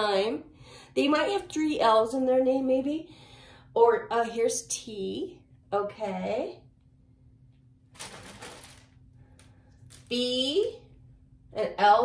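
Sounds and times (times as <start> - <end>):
cloth pouch rustle: 8.0 - 8.9
letter pieces rattling: 8.0 - 8.9.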